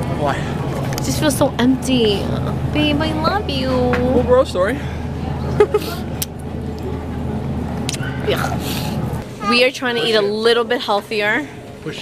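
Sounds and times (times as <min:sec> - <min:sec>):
shop floor rumble: 0:00.0 - 0:12.0.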